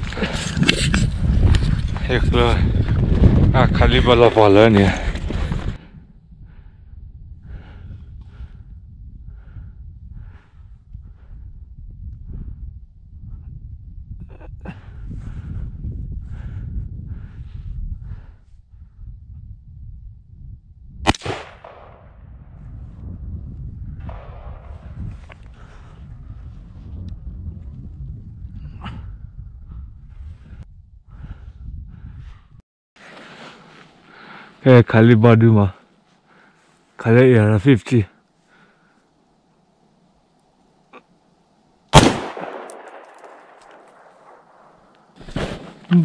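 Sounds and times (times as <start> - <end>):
rifle shot with echo: 21.1 - 22.2, 24.0 - 25.0, 41.9 - 44.9.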